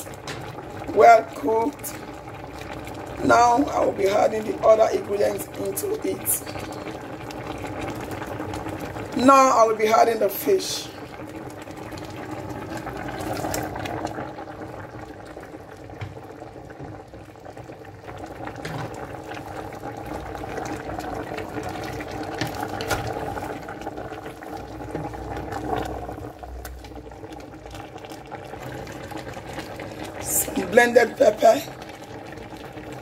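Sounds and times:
stock bubbling on the boil: 0:00.0 - 0:33.0.

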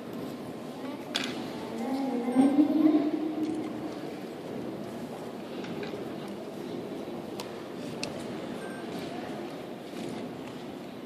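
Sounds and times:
crowded hall din: 0:00.0 - 0:11.0.

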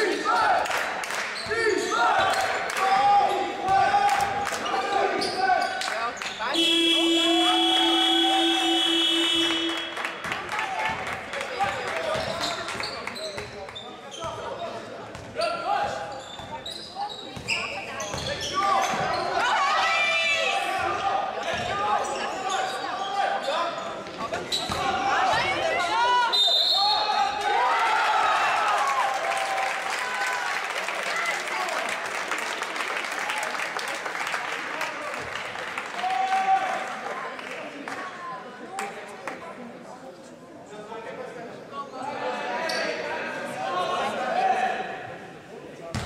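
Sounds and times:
shoes squeaking on court: 0:11.7 - 0:19.4, 0:21.5 - 0:24.9.

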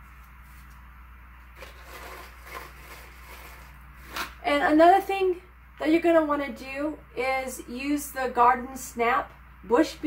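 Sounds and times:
steady low hum: 0:00.0 - 0:10.0
paper packet handled: 0:01.5 - 0:04.4.

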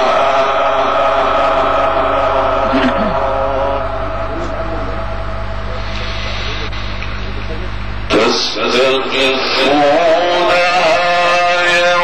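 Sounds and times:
low electrical hum: 0:00.0 - 0:12.0
man reciting melodically: 0:08.1 - 0:12.0.

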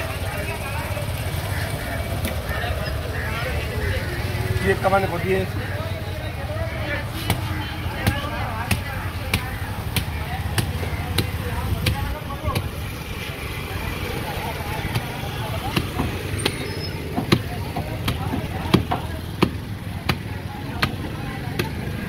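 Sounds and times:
background chatter: 0:00.0 - 0:22.0.

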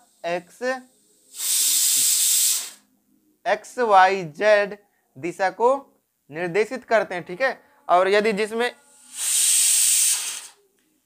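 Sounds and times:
steady hiss: 0:00.0 - 0:02.9, 0:08.2 - 0:10.7.

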